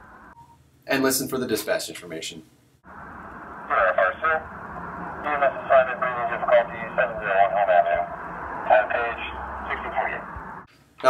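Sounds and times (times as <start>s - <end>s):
radio hiss: 3.4s - 4.6s, 5.2s - 10.6s
dispatcher voice over radio: 3.6s - 4.4s, 5.2s - 10.3s.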